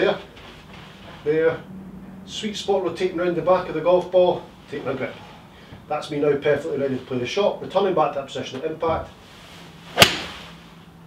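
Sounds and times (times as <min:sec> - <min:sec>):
golf club striking ball: 0:09.9 - 0:10.5.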